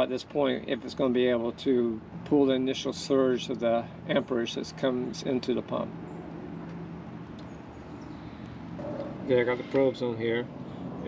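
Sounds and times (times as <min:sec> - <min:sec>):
low outdoor background hum: 0:00.0 - 0:11.0.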